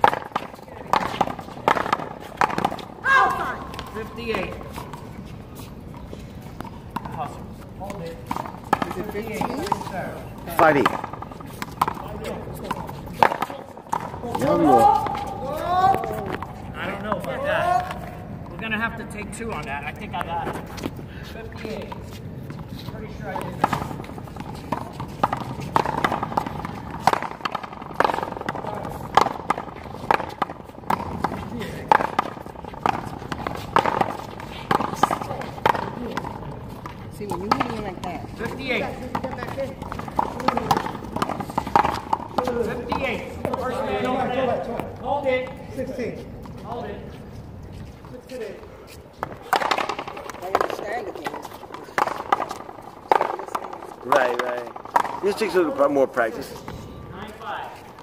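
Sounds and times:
players calling out: 0.0s - 5.8s, 6.5s - 47.1s
ball striking paddles and wall: 0.0s - 58.0s.

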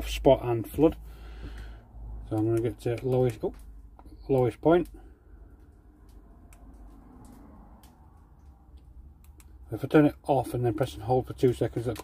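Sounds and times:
torch switch clicks: 6.0s - 9.6s.

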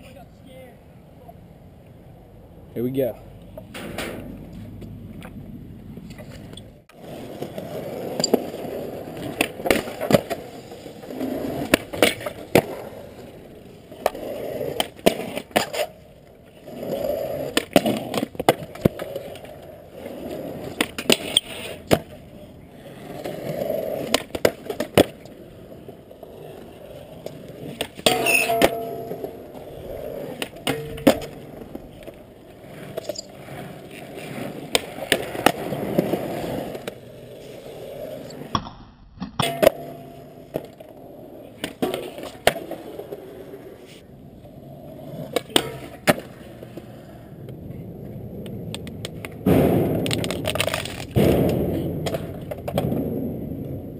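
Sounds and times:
skateboard wheels rolling on concrete: 0.0s - 53.9s
skateboard clacks: 6.0s - 16.1s, 16.8s - 37.1s, 39.3s - 43.7s, 44.7s - 53.9s.

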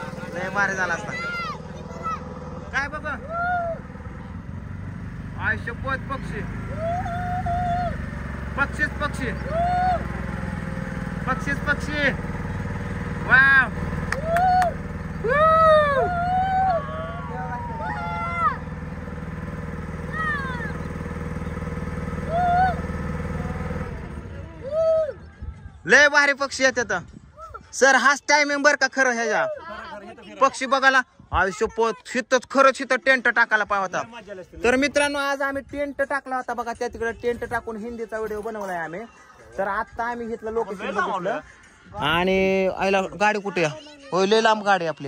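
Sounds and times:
boat motor droning: 0.0s - 25.1s
high rising-and-falling calls: 6.6s - 8.1s, 14.1s - 18.8s.

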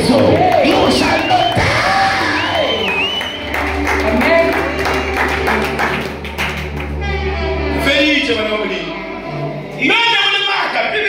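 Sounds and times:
man's amplified voice: 0.0s - 1.7s, 7.6s - 9.0s, 9.7s - 11.0s
congregation clapping and cheering: 0.0s - 7.2s
electronic keyboard music: 0.0s - 11.0s.

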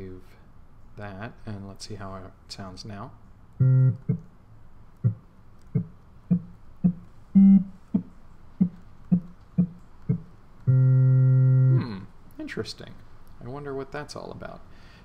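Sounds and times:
held steady tone: 3.6s - 4.2s, 5.8s - 12.0s.

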